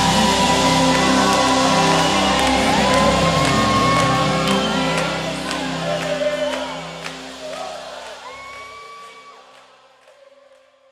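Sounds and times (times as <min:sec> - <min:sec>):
held high note: 0:00.0 - 0:09.0
worship music and congregation: 0:00.0 - 0:10.9.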